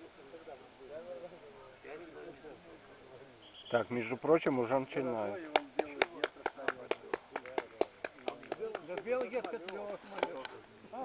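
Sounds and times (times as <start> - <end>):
voices calling and shouting: 0.0 - 11.0.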